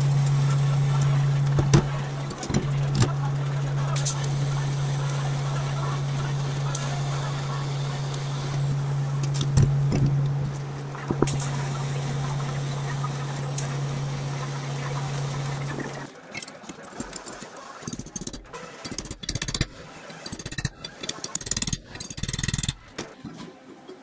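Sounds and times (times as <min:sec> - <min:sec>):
welding arc buzzing: 0:00.0 - 0:16.1
steel parts knocking and clinking: 0:16.3 - 0:23.2.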